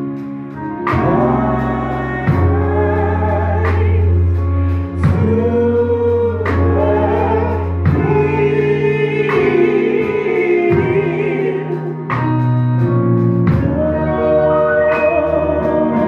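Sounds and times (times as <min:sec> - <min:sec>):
bass line: 0:00.0 - 0:16.0
gospel choir singing: 0:00.0 - 0:16.0.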